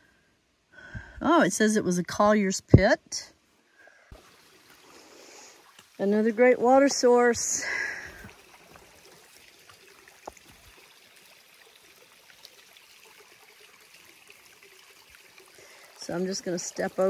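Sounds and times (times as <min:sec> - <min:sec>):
stream trickling over rock: 0:04.1 - 0:17.0.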